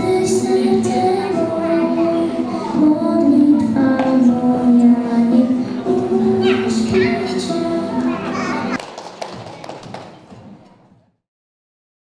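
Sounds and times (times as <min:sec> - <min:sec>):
girl singing into a microphone: 0:00.0 - 0:08.8.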